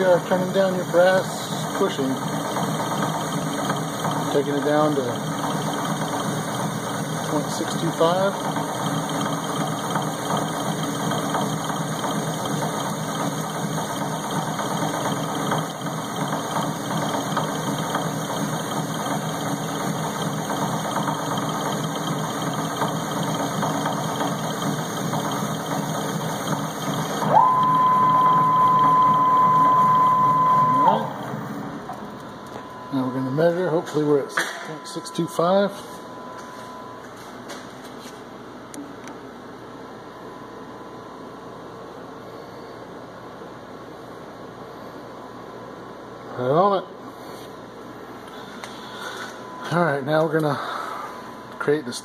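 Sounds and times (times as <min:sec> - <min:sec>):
metal lathe whirring: 0:00.0 - 0:31.6.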